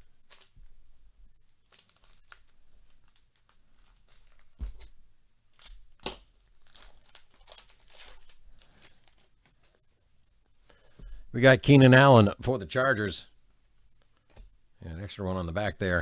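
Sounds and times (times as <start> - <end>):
foil wrapper tearing and crinkling: 0.0 - 0.6, 1.6 - 4.6, 5.6 - 9.3.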